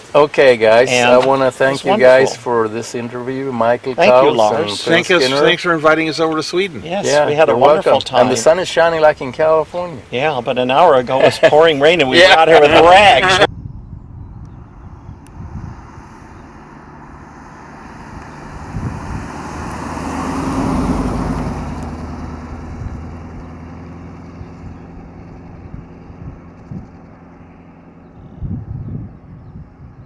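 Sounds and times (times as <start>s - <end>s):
car driving by: 15.3s - 28.2s.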